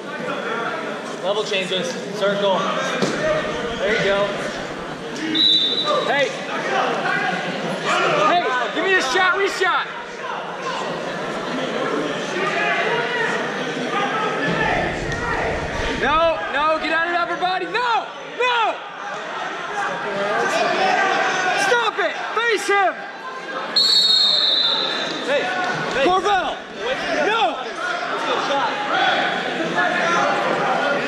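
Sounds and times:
people shouting and talking: 0.0s - 31.0s.

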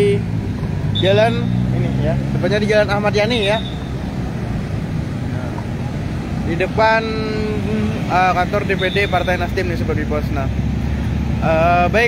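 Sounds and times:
heavy road traffic rumble: 0.0s - 12.0s.

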